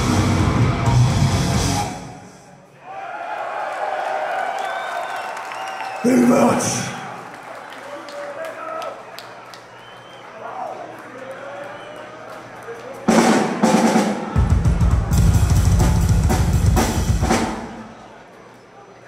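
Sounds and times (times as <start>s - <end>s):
fast heavy kick-drum roll: 13.2s - 17.8s
drum kit hits: 13.3s - 17.9s.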